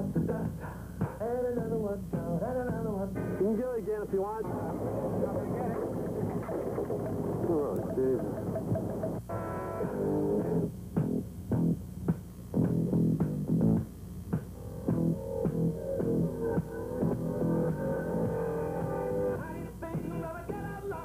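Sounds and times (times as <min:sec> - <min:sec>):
instrumental guitar and bass music: 0:04.5 - 0:20.3.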